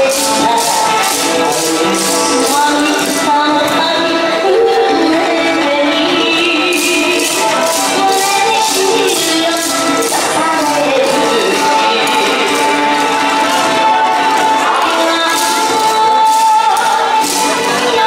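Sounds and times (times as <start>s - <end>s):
upbeat dance music: 0.0s - 18.0s
wooden clappers clattering: 6.7s - 13.6s.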